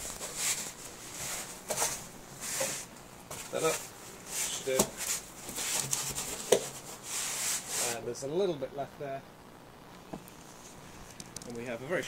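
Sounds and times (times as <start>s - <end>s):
foam rubbing against plastic: 3.5s - 8.0s.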